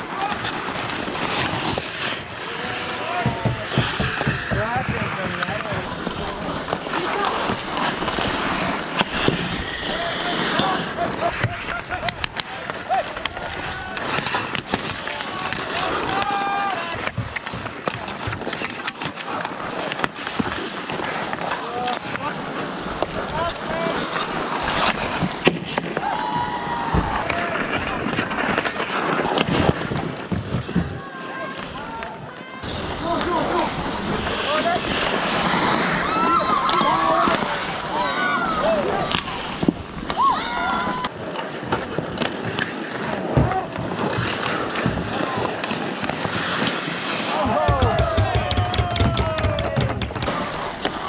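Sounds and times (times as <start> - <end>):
hockey sticks and puck clacking: 0.0 - 51.0
skate blades scraping ice: 0.0 - 51.0
players shouting: 9.6 - 18.4, 26.0 - 28.3, 31.0 - 41.3, 47.0 - 51.0.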